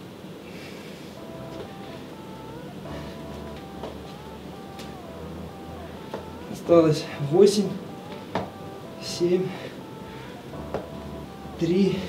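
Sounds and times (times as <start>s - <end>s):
soft electronic melody: 1.2s - 12.0s.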